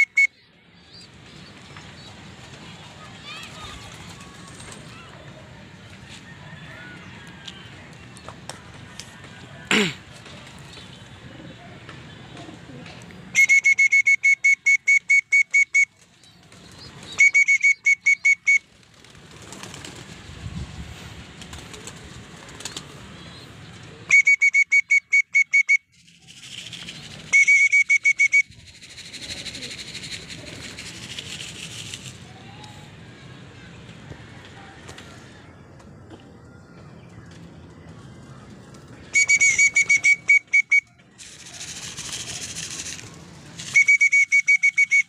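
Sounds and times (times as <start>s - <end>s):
shrill whistle short notes: 13.4s - 15.9s, 17.2s - 18.6s, 24.1s - 25.9s, 27.3s - 28.5s, 39.2s - 40.9s, 43.6s - 45.0s.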